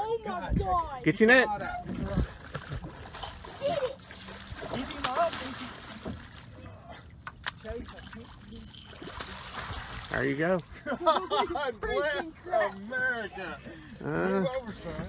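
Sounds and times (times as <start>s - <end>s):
fish splashing in water: 2.4s - 6.5s, 7.3s - 11.1s.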